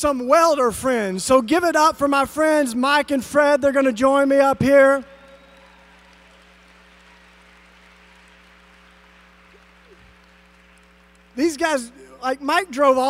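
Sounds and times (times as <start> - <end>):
audience applause: 4.8 - 11.9.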